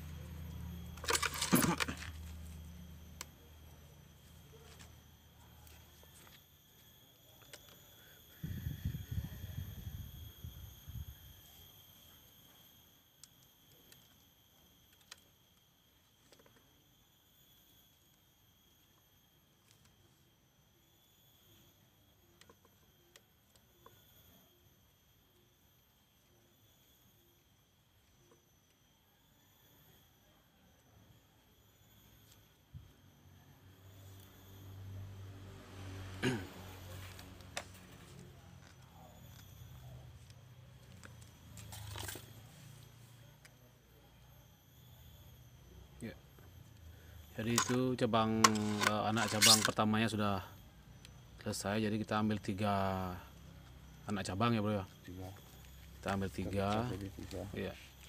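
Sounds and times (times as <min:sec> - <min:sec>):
wire handling clicks and rustles: 0:00.0 - 0:03.4, 0:47.4 - 0:49.8
faint high hum: 0:00.0 - 0:58.0.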